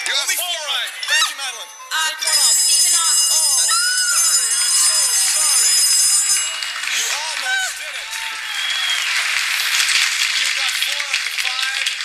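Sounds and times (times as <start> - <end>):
game show bell ringing: 0.0 - 9.0.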